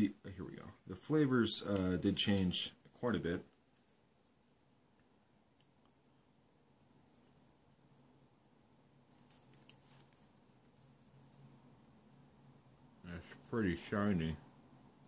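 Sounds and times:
paper clicks and rustles: 9.1 - 11.0.

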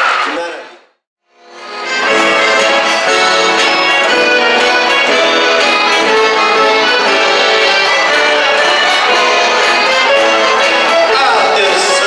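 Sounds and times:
accordion: 1.4 - 12.0
guitar accompaniment: 1.4 - 12.0.

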